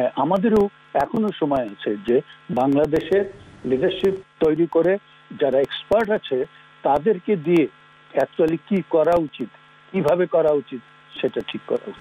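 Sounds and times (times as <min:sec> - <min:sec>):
man speaking over video call: 0:00.0 - 0:12.0
steady electrical hum: 0:00.0 - 0:12.0.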